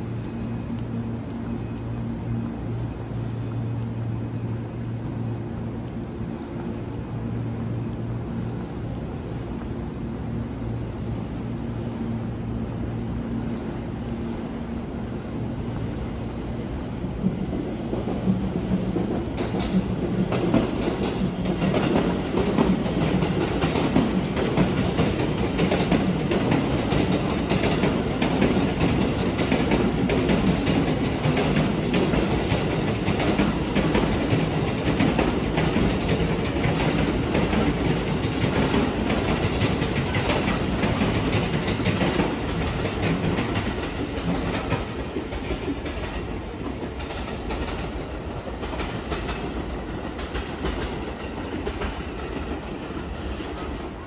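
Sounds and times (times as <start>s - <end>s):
electric train rumble: 0.0s - 54.0s
wheels clicking over rail joints: 0.0s - 54.0s.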